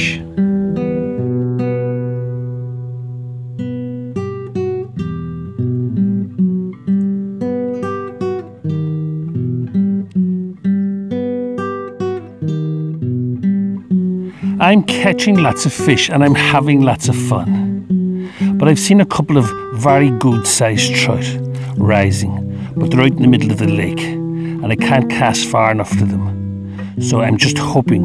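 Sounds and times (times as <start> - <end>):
acoustic guitar music: 0.0 - 28.0.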